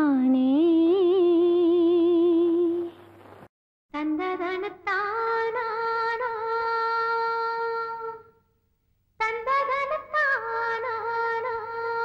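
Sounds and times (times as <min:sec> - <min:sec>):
faint low steady hum: 0:00.4 - 0:12.0.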